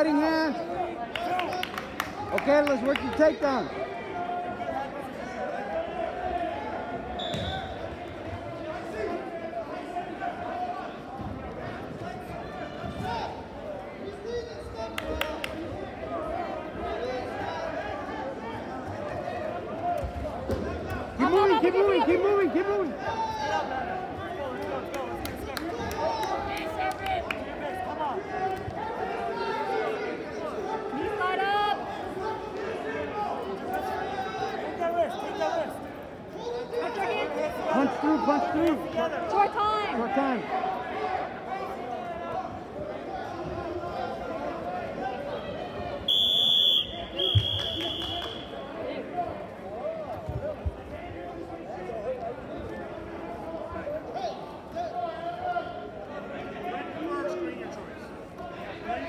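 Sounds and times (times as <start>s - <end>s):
crowd talking and shouting: 0.0s - 59.0s.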